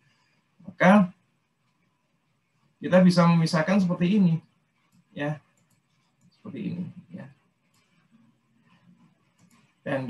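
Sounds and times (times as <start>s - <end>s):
faint room sounds: 0.0s - 10.0s
man speaking: 0.6s - 1.2s, 2.8s - 4.4s, 5.1s - 5.4s, 6.4s - 7.4s.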